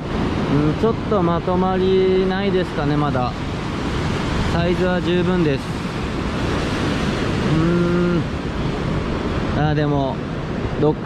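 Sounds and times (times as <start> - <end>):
ocean surf breaking: 0.0 - 11.0
wind buffeting microphone: 0.0 - 11.0
man humming hmm: 7.5 - 8.3.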